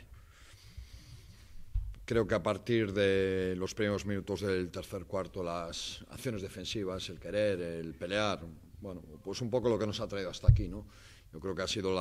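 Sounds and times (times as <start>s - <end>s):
man breathing close to microphone: 0.1s - 1.7s, 10.9s - 11.3s
deep bump on microphone: 10.5s - 10.8s.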